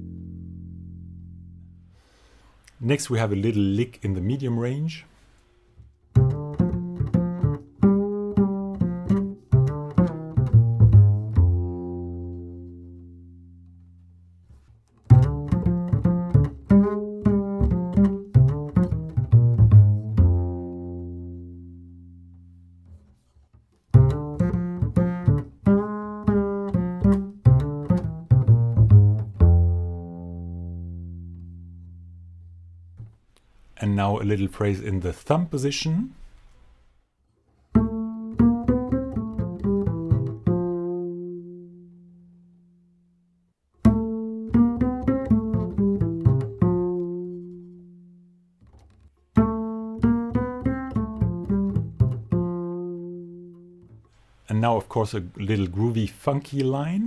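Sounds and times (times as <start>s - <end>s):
double bass plucked notes: 0.0s - 4.9s, 5.8s - 23.2s, 23.8s - 35.0s, 37.7s - 57.0s.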